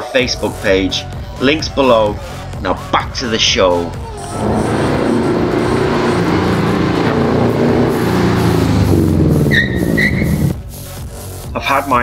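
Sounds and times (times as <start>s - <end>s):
car engine revving: 2.8s - 11.4s.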